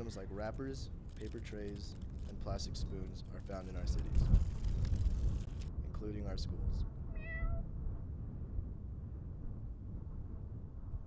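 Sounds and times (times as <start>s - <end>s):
steady low rumble: 0.0s - 11.0s
cat meowing: 7.1s - 7.7s.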